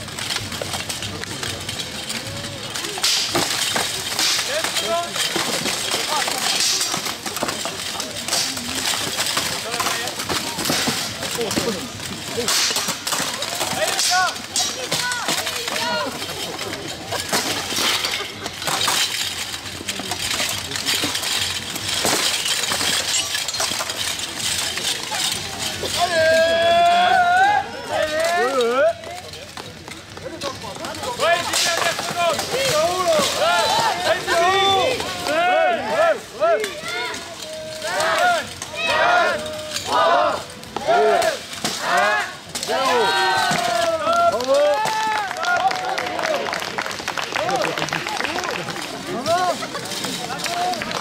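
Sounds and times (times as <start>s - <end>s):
armour and swords clashing: 0.0s - 51.0s
people shouting: 13.4s - 16.1s, 25.2s - 28.9s, 31.2s - 46.4s.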